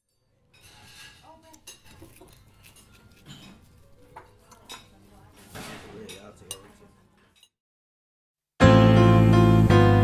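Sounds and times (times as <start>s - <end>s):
clinking dishes and cutlery: 0.0s - 7.6s
faint chatter: 1.1s - 7.4s.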